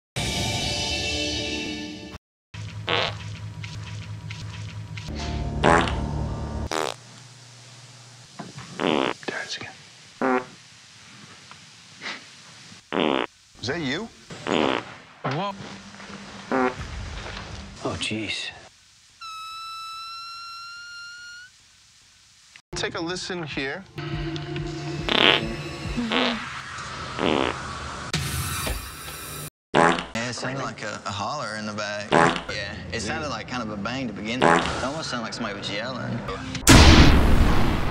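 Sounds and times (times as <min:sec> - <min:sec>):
buzzing fart sound effect: 0:02.6 - 0:04.0, 0:05.6 - 0:07.0, 0:08.6 - 0:09.2, 0:10.2 - 0:10.6, 0:12.9 - 0:13.3, 0:14.3 - 0:15.0, 0:16.4 - 0:17.0, 0:25.0 - 0:30.2, 0:32.1 - 0:32.5, 0:34.4 - 0:34.9
background music drone: 0:24.0 - 0:26.1
hissing burst: 0:36.7 - 0:37.9.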